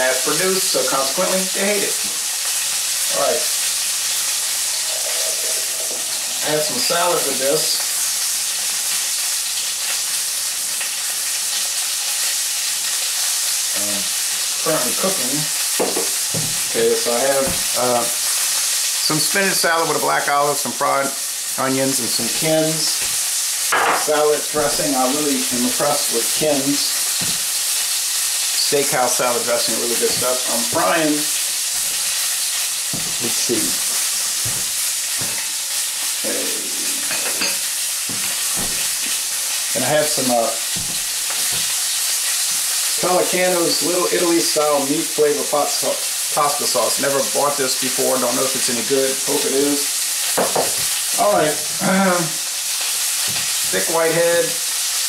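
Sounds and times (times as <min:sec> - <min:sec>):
sausage sizzling in a pan: 0:00.0 - 0:55.0.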